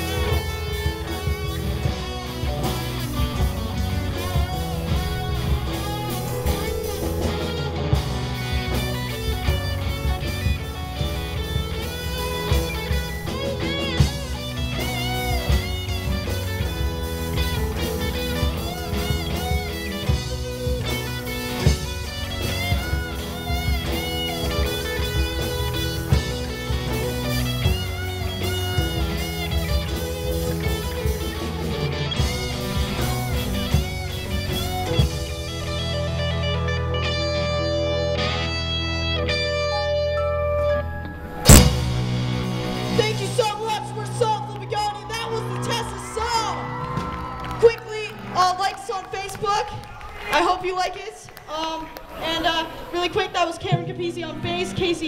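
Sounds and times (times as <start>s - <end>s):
drum kit: 0.0s - 38.8s, 41.2s - 45.8s
bass guitar: 0.0s - 49.5s
electric guitar lead: 0.0s - 50.3s
keyboard: 0.0s - 51.0s.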